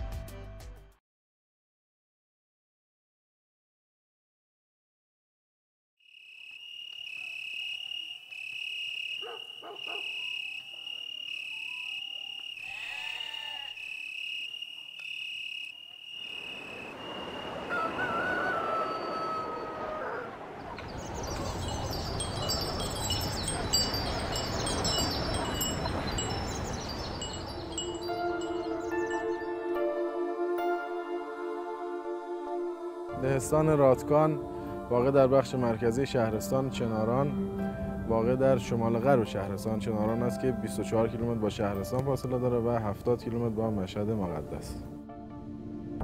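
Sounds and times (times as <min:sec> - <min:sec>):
pulsing high insect chirping: 0:06.0 - 0:19.1, 0:20.9 - 0:29.7
chorus of short high calls: 0:06.0 - 0:29.4.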